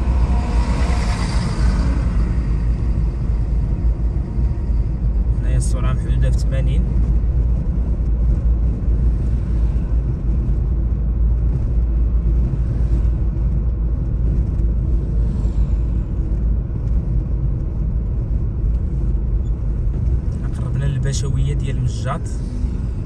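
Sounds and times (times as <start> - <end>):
car driving on smooth asphalt: 0.0 - 23.0.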